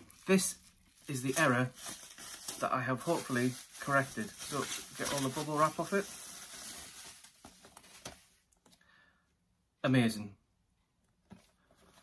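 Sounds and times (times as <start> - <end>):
bubble wrap rustling: 0.0 - 8.5.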